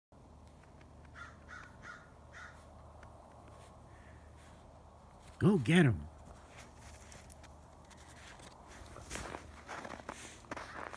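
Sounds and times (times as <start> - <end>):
footsteps crunching in snow: 3.4 - 10.9.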